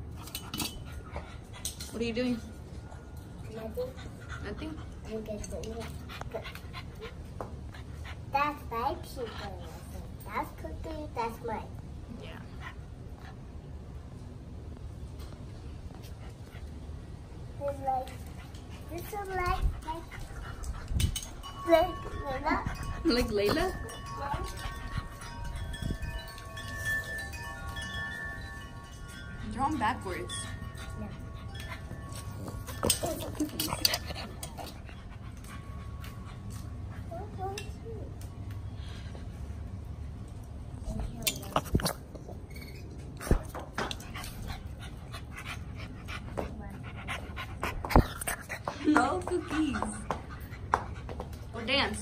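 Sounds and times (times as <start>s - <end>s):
small dog panting: 3.5s - 10.1s, 18.1s - 21.7s, 29.2s - 37.4s, 44.0s - 51.5s
wind chimes ringing: 20.0s - 40.4s.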